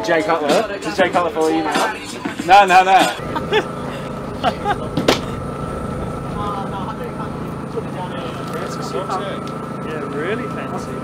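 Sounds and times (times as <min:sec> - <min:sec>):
low mechanical hum: 0:02.0 - 0:11.0
thin high whine: 0:02.9 - 0:11.0.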